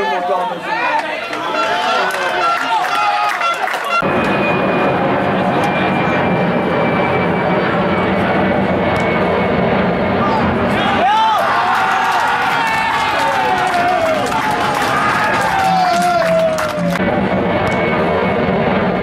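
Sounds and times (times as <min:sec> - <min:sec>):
jet aircraft passing overhead: 0:03.9 - 0:19.0
people shouting: 0:10.2 - 0:17.0.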